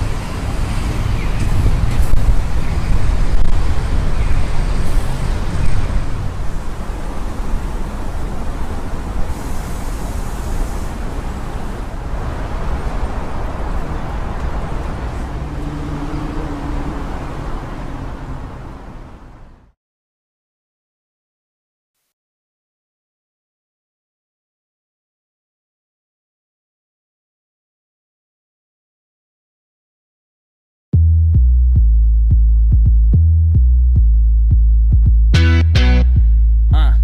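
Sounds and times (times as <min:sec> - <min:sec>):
engine hum: 0:00.0 - 0:19.7
road traffic rumble: 0:00.0 - 0:19.8, 0:35.3 - 0:37.0.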